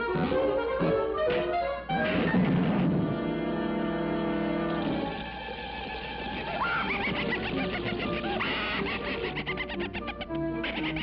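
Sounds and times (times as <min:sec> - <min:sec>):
orchestral cartoon music: 0:00.0 - 0:11.0.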